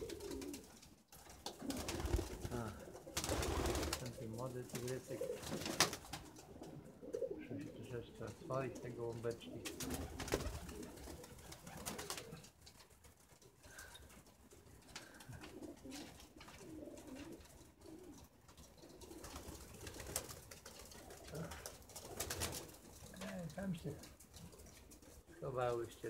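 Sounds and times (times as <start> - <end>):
pigeons cooing: 0.0 - 25.6
faint clicks and rustles: 0.0 - 26.0.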